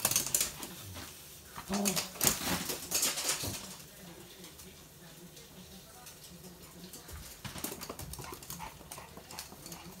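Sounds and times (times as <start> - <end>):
dog claws clicking on floor: 0.0 - 4.7, 5.9 - 10.0.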